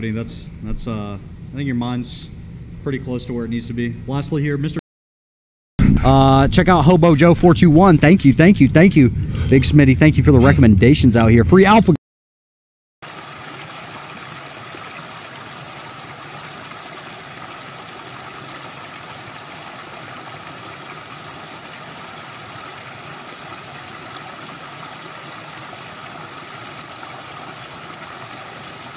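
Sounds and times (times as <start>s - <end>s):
creek water over stones: 13.0s - 28.9s.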